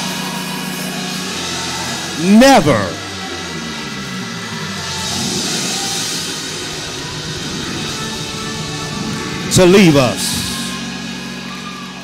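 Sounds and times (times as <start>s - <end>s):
congregation background: 2.2s - 3.0s, 6.0s - 11.3s
man preaching: 2.2s - 3.0s, 9.4s - 10.7s
organ holding a chord: 6.8s - 11.2s.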